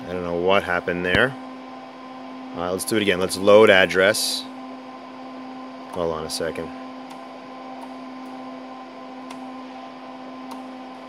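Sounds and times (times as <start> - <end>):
computer cooling fans humming: 0.0 - 11.0.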